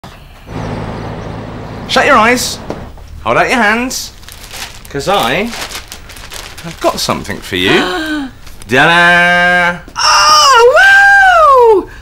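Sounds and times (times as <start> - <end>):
street noise: 0.1 - 6.7
car engine hum: 0.4 - 4.9.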